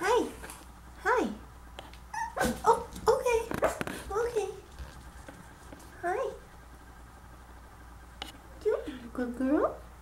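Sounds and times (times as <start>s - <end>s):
puppy whining: 2.1s - 2.9s.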